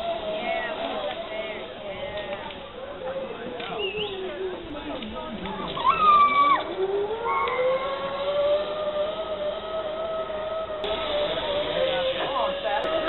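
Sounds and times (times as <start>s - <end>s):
zip line pulleys whirring: 0.0s - 13.0s.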